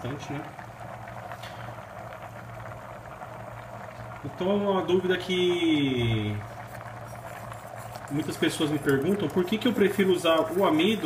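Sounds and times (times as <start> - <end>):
gas burner hissing: 0.0 - 11.0
pot bubbling: 0.0 - 11.0.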